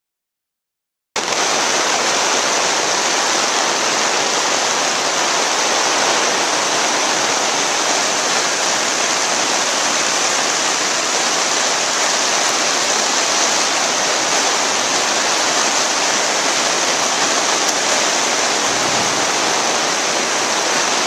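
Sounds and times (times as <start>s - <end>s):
steady rain in forest: 1.2s - 21.0s.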